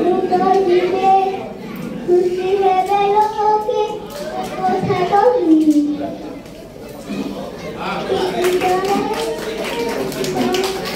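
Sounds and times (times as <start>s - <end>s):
child speaking into microphone: 0.0s - 10.9s
audience clapping: 8.2s - 10.9s.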